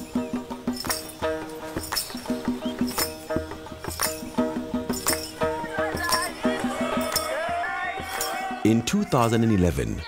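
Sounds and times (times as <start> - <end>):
music with percussive strikes: 0.0 - 8.6.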